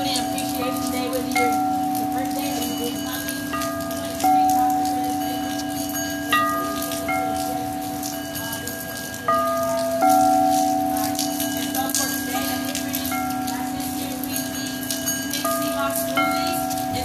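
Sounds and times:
rain pattering faintly: 0.0s - 17.0s
singing bowls ringing: 0.0s - 17.0s.

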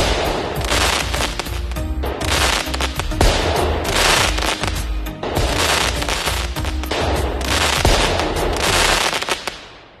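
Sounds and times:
fireworks crackling and popping: 0.0s - 10.0s.

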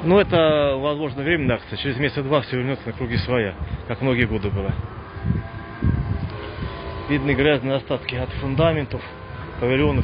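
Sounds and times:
low rumbling bumps: 2.8s - 10.0s.

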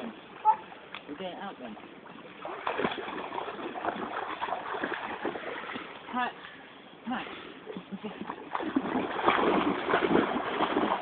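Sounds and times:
dog splashing through water: 2.4s - 5.9s, 8.5s - 11.0s.

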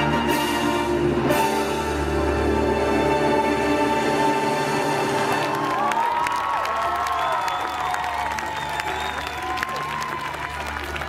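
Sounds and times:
music playing: 0.0s - 6.2s
crowd clapping and cheering: 4.8s - 11.0s.

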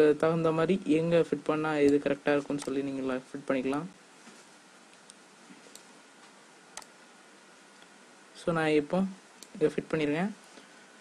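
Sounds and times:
low background hiss: 0.0s - 11.0s
computer mouse clicks: 1.8s - 2.8s.

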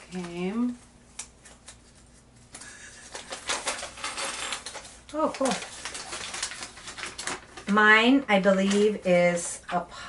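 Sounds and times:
foil bag crinkling: 0.0s - 9.6s.

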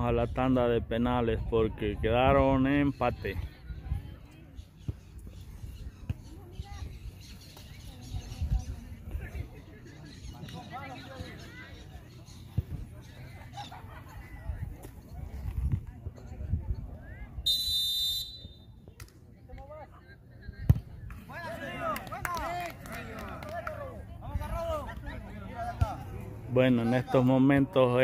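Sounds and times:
referee's whistle blast: 17.4s - 18.7s.

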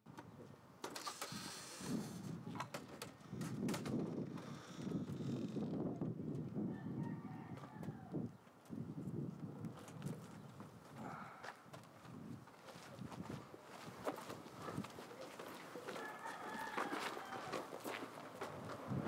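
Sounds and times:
rooster crowing: 6.8s - 8.2s, 15.9s - 17.9s
footsteps on dirt road: 9.7s - 19.0s.

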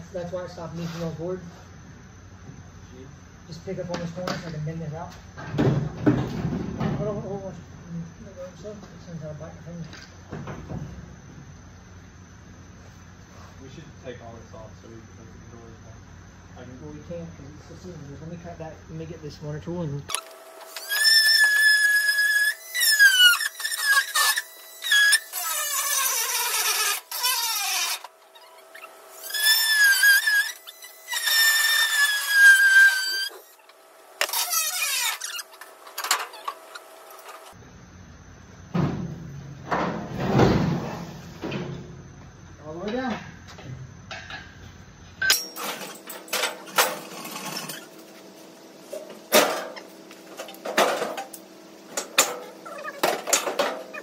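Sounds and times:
power tool cutting steel: 20.1s - 37.5s.

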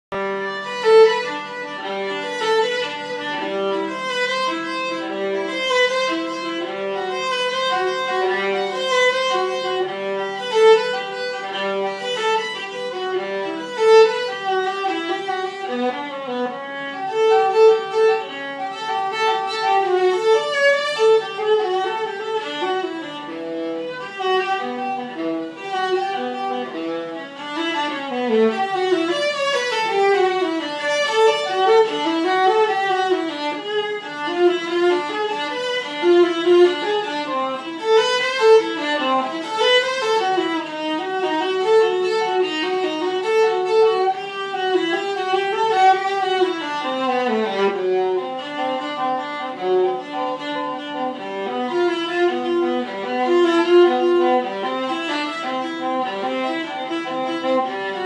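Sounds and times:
bowed viola melody: 0.1s - 58.0s.

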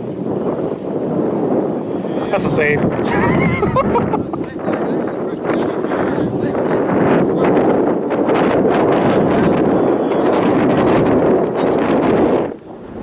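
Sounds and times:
wind blowing across microphone: 0.0s - 13.0s.

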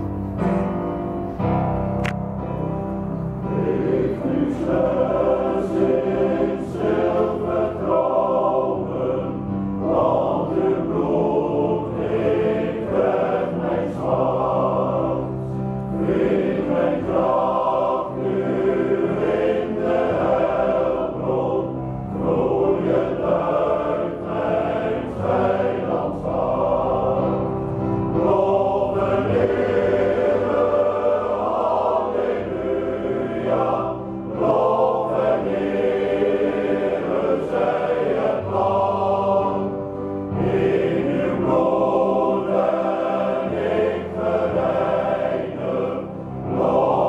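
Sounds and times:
male choir singing: 3.4s - 47.0s.

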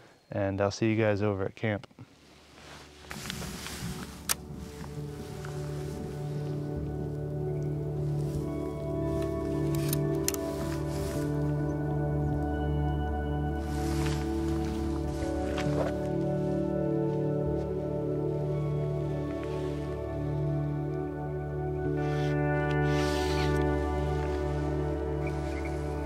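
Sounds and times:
soft music of sustained chords: 0.2s - 26.0s.

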